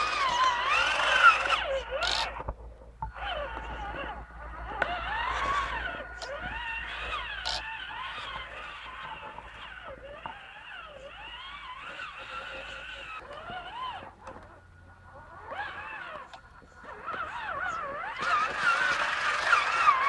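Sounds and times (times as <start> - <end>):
toy truck electric motor whining: 0.0 - 20.0.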